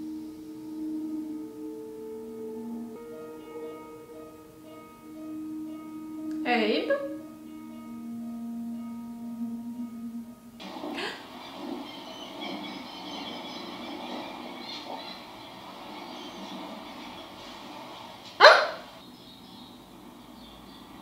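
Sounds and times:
held low musical tone: 0.0s - 18.2s
outdoor ambience: 0.0s - 21.0s.

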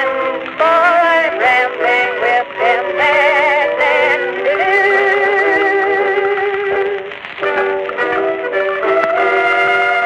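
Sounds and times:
jazz band playing: 0.0s - 10.0s.

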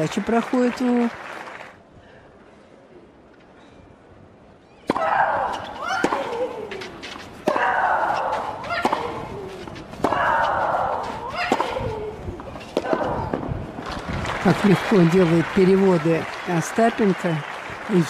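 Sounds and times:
tennis racket hitting ball: 4.8s - 13.4s.

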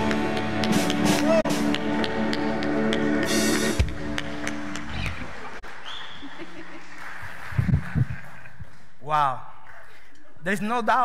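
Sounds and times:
hand claps: 0.0s - 8.4s.

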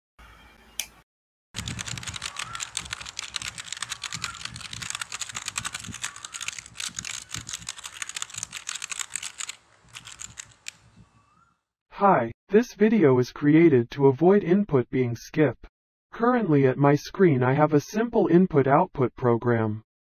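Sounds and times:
computer keyboard typing: 1.6s - 10.8s.

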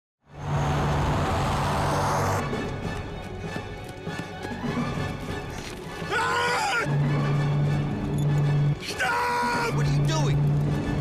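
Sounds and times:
propeller plane engines: 0.3s - 3.0s.

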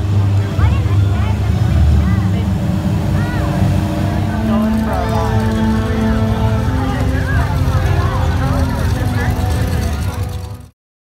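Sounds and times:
faint music: 0.0s - 10.7s
voices calling out: 0.0s - 10.7s
vehicle engine rumble: 0.0s - 10.8s.

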